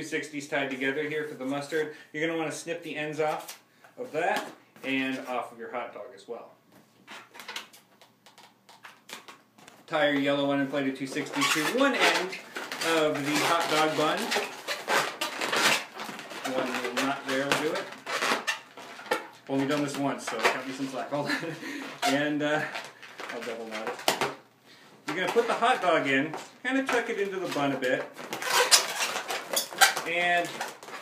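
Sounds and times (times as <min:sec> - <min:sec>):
balloons rubbing and scraping: 0:09.9 - 0:24.4, 0:25.0 - 0:31.0.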